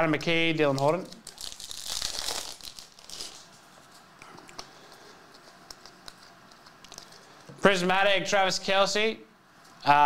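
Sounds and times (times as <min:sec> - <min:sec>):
plastic wrapper tearing and crinkling: 0:00.4 - 0:04.7.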